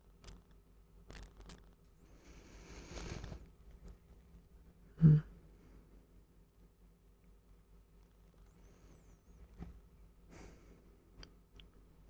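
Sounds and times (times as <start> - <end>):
small clicks: 0.1 - 1.8
faint soft rustling: 0.1 - 4.8.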